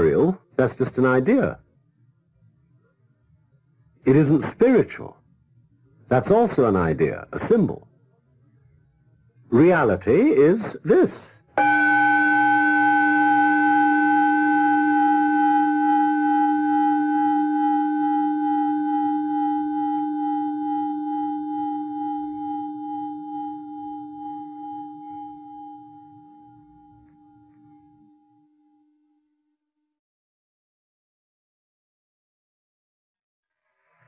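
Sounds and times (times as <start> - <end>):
singing bowl ringing: 11.6 - 29.1.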